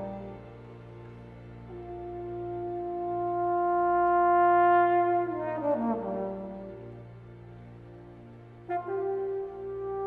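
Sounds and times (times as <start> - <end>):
trombone playing: 1.8 - 7.0, 8.7 - 10.0.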